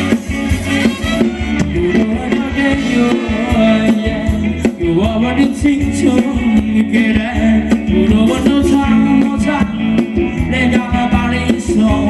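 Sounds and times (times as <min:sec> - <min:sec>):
band playing dance music: 0:00.0 - 0:12.0
person singing: 0:00.0 - 0:12.0
steady drum beat: 0:00.0 - 0:12.0.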